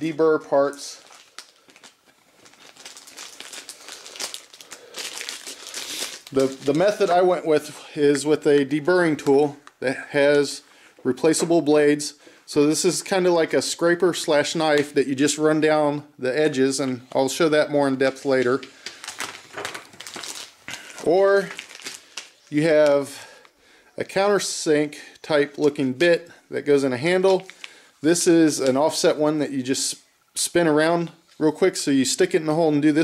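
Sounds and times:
plastic packaging crinkling: 0.6s - 7.4s, 18.0s - 22.5s, 27.1s - 27.8s.

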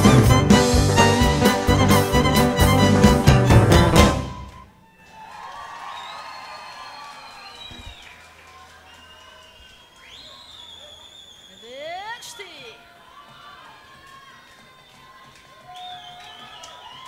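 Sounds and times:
live band final chord: 0.0s - 4.6s.

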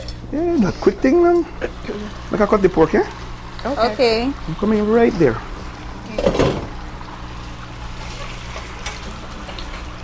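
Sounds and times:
food sizzling in a frying pan: 0.0s - 10.0s.

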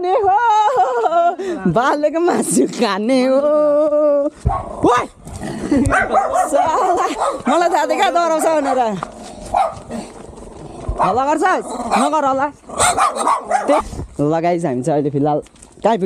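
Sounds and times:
small dogs barking: 5.8s - 10.0s, 11.0s - 13.9s.

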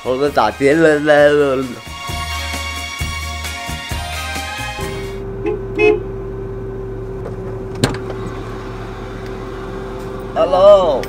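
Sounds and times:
car engine idling: 5.1s - 11.0s.

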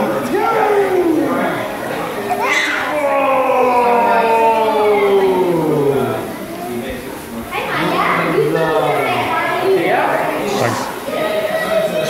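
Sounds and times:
children chattering: 0.0s - 12.0s
children's high-pitched calls: 2.2s - 5.5s.

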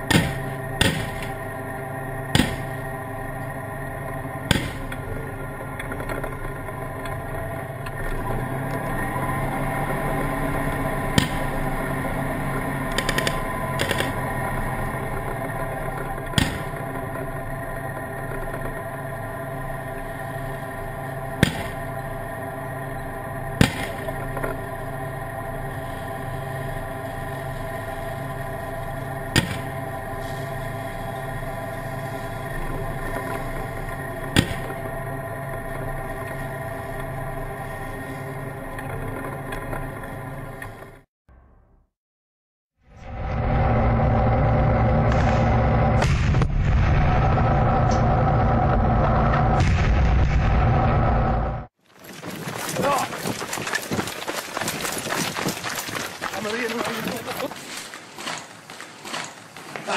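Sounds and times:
tank engine droning: 0.0s - 41.8s, 42.8s - 59.9s
gunfire bangs: 2.4s - 2.7s, 23.6s - 24.0s.

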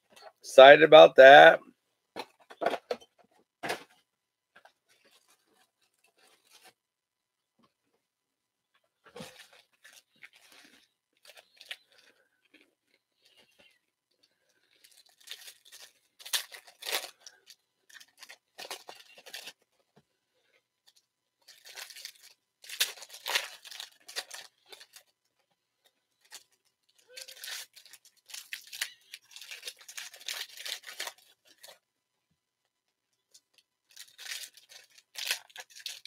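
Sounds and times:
foil wrappers tearing and crinkling: 14.8s - 19.6s, 20.9s - 25.2s, 26.2s - 31.8s, 33.4s - 36.0s.

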